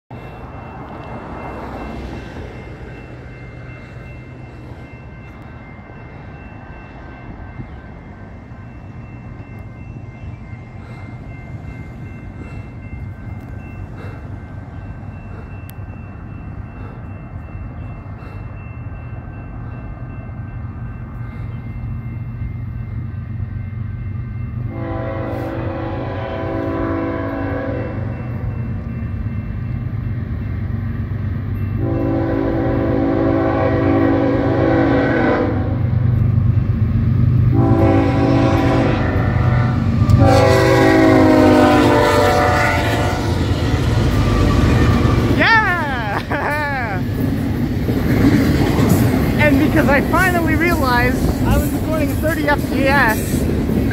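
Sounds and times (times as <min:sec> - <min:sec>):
diesel locomotive engine rumble: 0:00.1 - 0:53.9
train horn blasts: 0:24.7 - 0:28.1, 0:31.8 - 0:35.9, 0:37.5 - 0:45.4.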